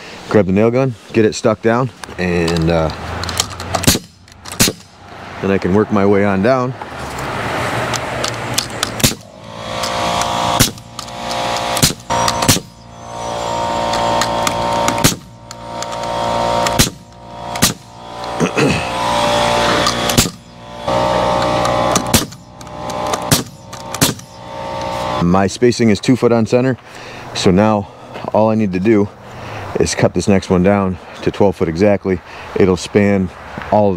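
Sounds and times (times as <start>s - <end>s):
nail gun shots: 3.4s - 5.0s, 8.6s - 12.8s, 13.8s - 18.3s, 19.3s - 24.4s
machine hum: 7.2s - 25.4s.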